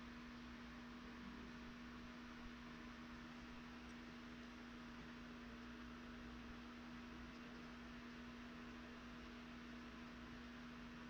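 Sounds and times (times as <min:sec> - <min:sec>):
faint steady hiss: 0:00.0 - 0:11.0
steady low hum: 0:00.0 - 0:11.0.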